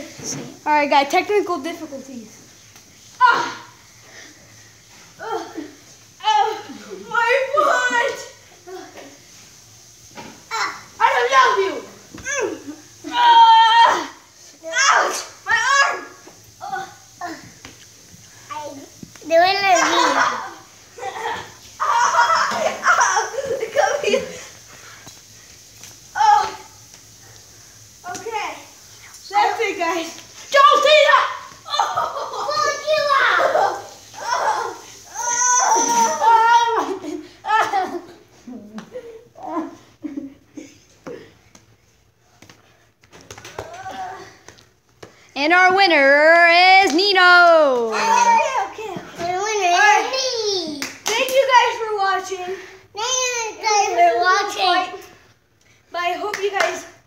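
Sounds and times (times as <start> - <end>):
children shouting and crying: 3.2 - 3.8, 10.5 - 17.6, 19.5 - 24.3, 30.6 - 38.2, 46.8 - 50.9.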